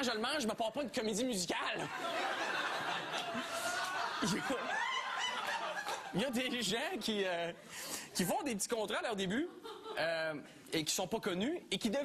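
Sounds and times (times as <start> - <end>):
studio audience laughing: 1.8 - 7.6, 9.3 - 10.4
man speaking: 6.1 - 12.0.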